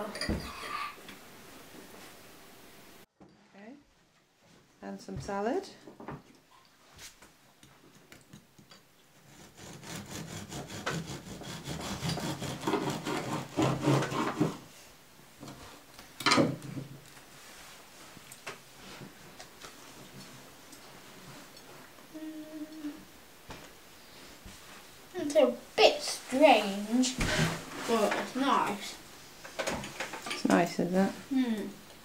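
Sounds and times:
bread knife sawing through crust: 9.2 - 14.6.

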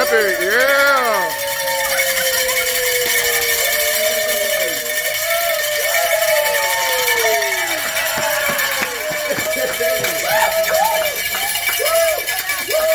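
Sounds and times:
handheld noisemakers rattling: 0.0 - 12.9
people cheering and whooping: 0.0 - 12.9.

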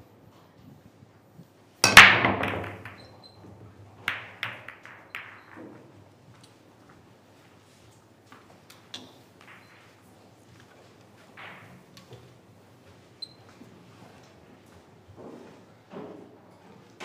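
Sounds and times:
billiard balls clacking: 1.8 - 6.6
cue ball cracking into balls: 1.8 - 6.6.

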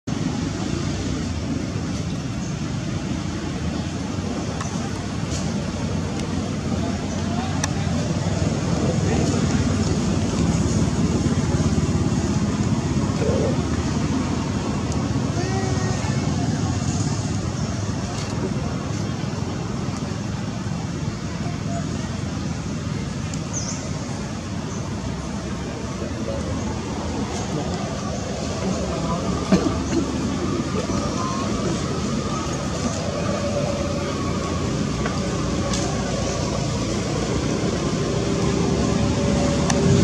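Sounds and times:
low outdoor rumble: 0.0 - 40.0.

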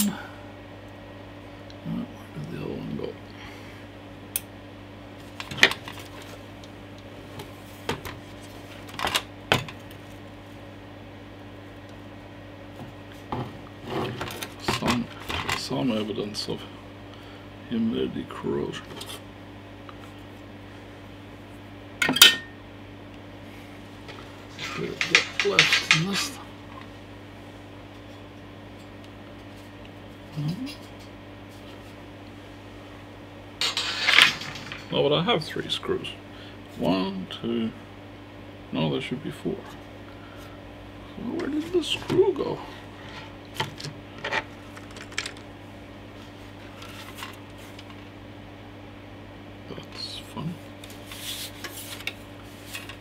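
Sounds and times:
low electrical hum: 0.0 - 53.0
metal screws clattering: 33.6 - 34.9.

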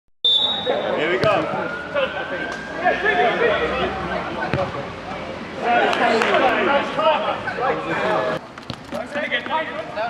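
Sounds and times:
players' voices: 0.4 - 10.0.

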